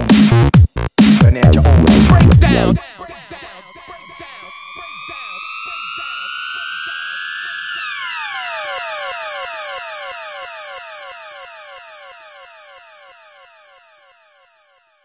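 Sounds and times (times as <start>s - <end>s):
rising synth tone: 1.6s - 15.0s
falling siren-like synth sweeps: 3.0s - 15.0s.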